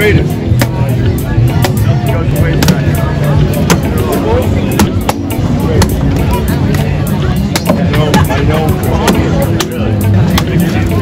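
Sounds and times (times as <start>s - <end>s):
music: 0.0s - 11.0s
voices: 0.0s - 11.0s.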